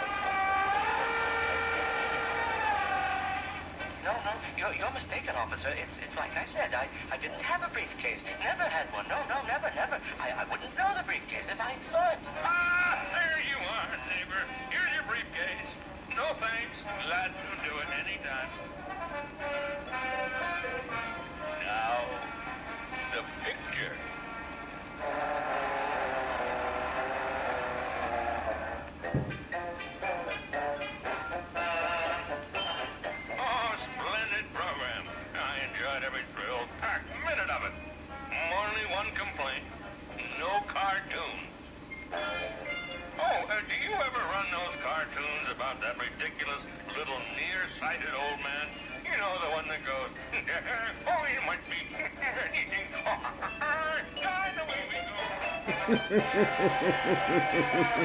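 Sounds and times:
cartoon music score: 0:55.0 - 0:58.0.

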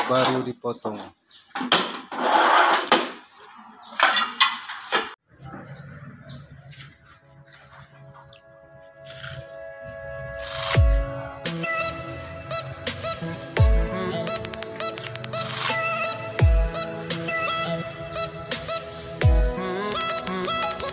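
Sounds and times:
tile cutter scraping tile: 0:02.1 - 0:03.0
background music sustained tones: 0:06.5 - 0:20.9.

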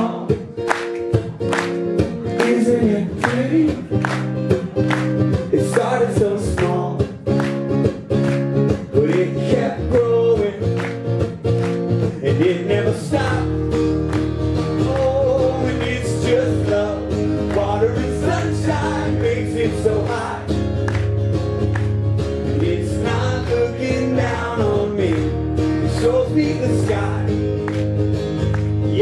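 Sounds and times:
man singing: 0:00.0 - 0:00.7, 0:02.2 - 0:04.8, 0:05.4 - 0:07.3, 0:08.8 - 0:11.0, 0:12.0 - 0:13.8, 0:14.6 - 0:20.7, 0:22.5 - 0:27.6, 0:28.7 - 0:29.0
acoustic guitar strumming: 0:00.0 - 0:29.0.

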